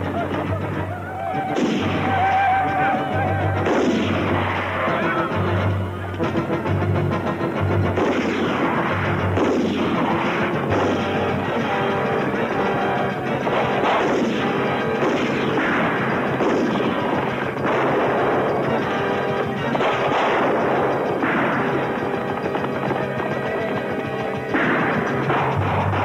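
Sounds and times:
film score music: 0.0s - 26.0s
gunshots: 0.0s - 26.0s
heavy blasts: 0.0s - 26.0s
cannon fire: 1.5s - 2.5s, 3.6s - 5.3s, 7.8s - 26.0s.

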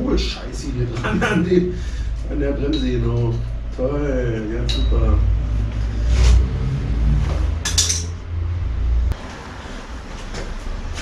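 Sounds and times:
steady low rumble: 0.0s - 11.0s
bicycle metallic clinks and rattles: 7.6s - 8.2s.

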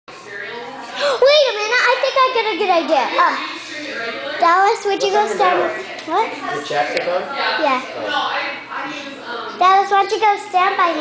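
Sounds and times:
child's high-pitched voice: 1.1s - 3.5s, 9.6s - 11.0s.

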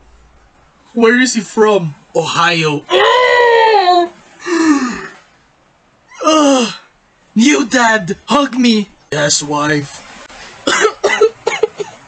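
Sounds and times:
person coughing: 10.7s - 12.0s.

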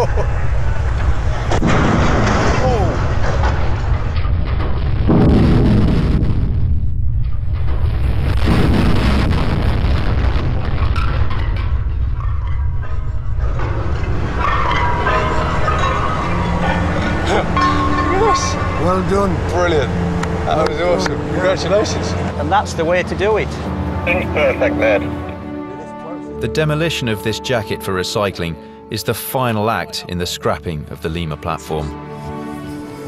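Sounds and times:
collapsing steel low rumble: 0.0s - 25.3s
music: 0.0s - 33.0s
people's voices: 2.5s - 3.2s, 15.0s - 31.9s.

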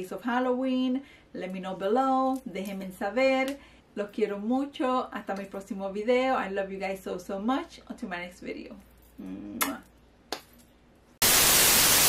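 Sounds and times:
static hiss transition effect: 11.2s - 12.0s.

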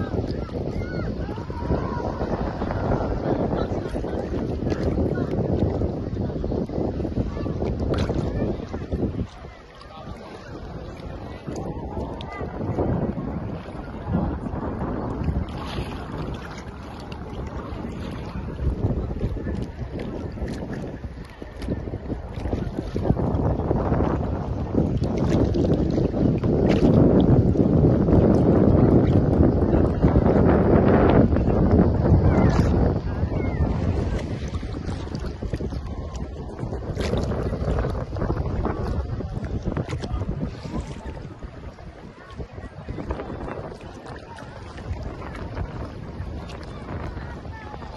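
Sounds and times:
sea water sloshing: 0.0s - 47.9s
wind buffeting microphone: 0.0s - 47.9s.

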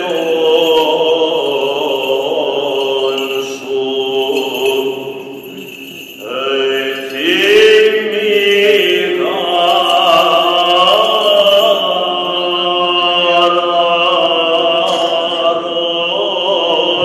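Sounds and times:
men singing chant: 0.0s - 17.0s.

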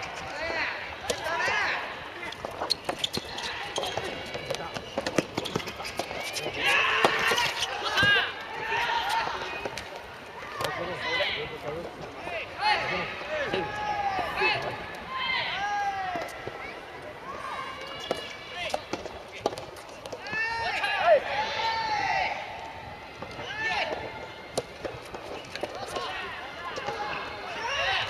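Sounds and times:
players shouting: 6.3s - 11.6s, 12.2s - 18.8s, 20.2s - 22.8s, 25.7s - 28.0s.

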